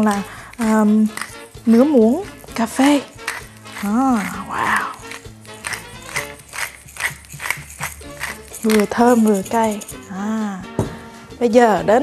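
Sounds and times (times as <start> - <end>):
pepper mill grinding: 0.0 - 10.3
background music: 0.0 - 12.0.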